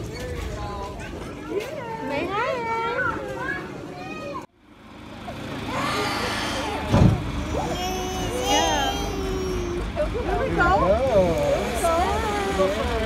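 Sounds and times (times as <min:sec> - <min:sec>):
low engine rumble: 0:04.6 - 0:13.0
short low thump: 0:06.9 - 0:07.3
high-pitched voice vocalizing: 0:07.4 - 0:09.9.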